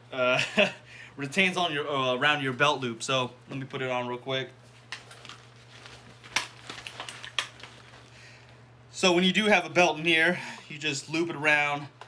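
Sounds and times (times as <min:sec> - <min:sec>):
nylon belt rustling: 0:04.7 - 0:08.3.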